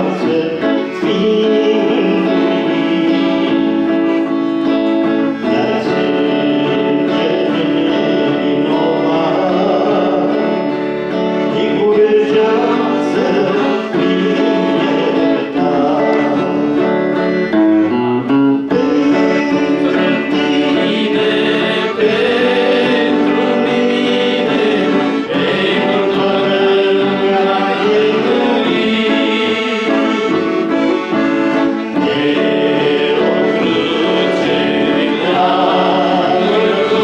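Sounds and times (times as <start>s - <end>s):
people singing: 0.0s - 17.5s, 18.6s - 37.0s
electric guitar: 0.0s - 37.0s
sustained chords: 0.0s - 37.0s.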